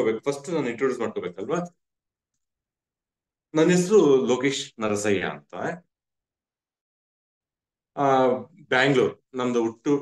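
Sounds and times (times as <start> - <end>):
man speaking over video call: 0.0 - 1.9, 3.4 - 6.0, 7.8 - 10.0.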